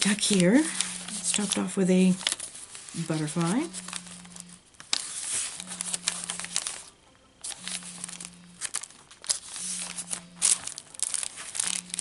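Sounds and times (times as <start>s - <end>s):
paper rustling and crinkling: 0.0s - 12.0s
cell phone buzzing: 3.0s - 12.0s.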